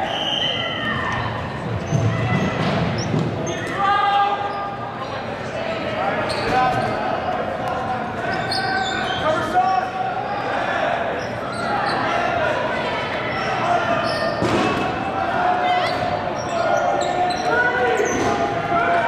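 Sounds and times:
dodgeballs bouncing on gym floor: 1.6s - 3.5s, 14.3s - 15.0s.

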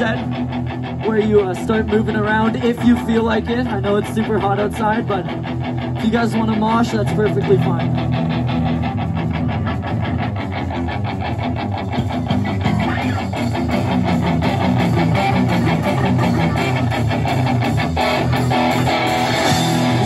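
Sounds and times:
rock band playing: 0.0s - 20.0s.

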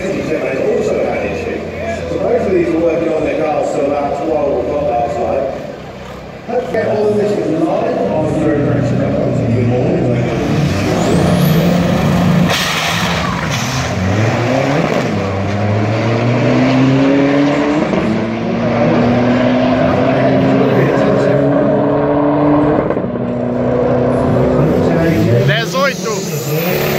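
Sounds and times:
drag car engines accelerating: 0.0s - 26.9s.

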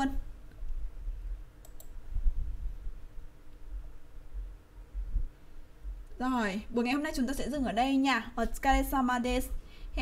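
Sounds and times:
faint steady hum: 0.0s - 10.0s
computer mouse clicks: 1.6s - 2.0s.

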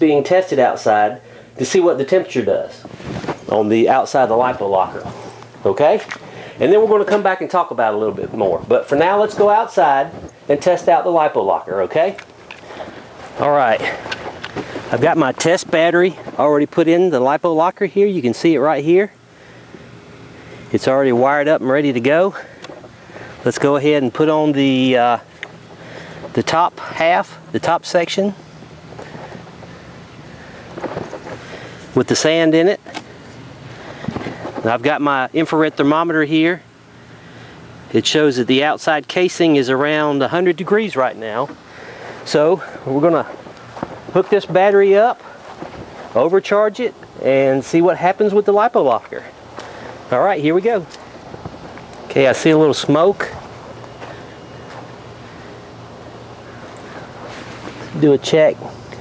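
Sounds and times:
outdoor background: 0.0s - 59.0s.

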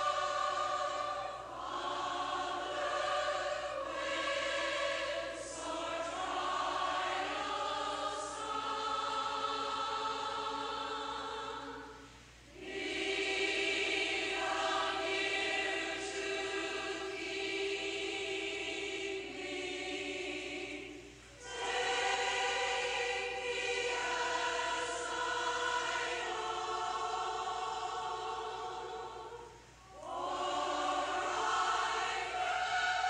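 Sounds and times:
congregation singing a hymn: 0.0s - 33.0s.

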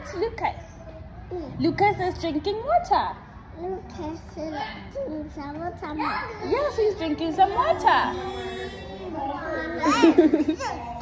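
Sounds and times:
toddler chattering: 3.6s - 6.8s, 8.0s - 11.0s.

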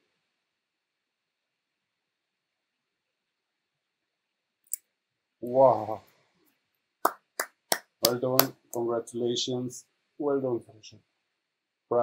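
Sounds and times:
person clapping hands: 7.1s - 8.8s.

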